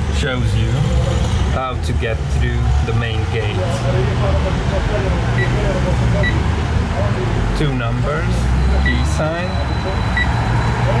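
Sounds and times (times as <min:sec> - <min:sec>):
street traffic rumble: 0:00.0 - 0:11.0
intercom keypad beeps: 0:05.4 - 0:05.6, 0:06.2 - 0:06.4, 0:08.6 - 0:10.8.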